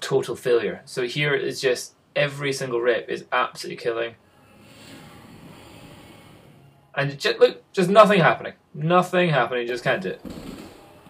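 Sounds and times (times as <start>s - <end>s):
breathy rush of air: 4.0s - 7.0s.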